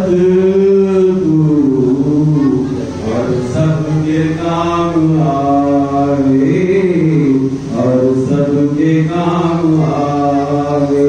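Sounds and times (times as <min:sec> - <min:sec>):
person chanting melodically: 0:00.0 - 0:11.0.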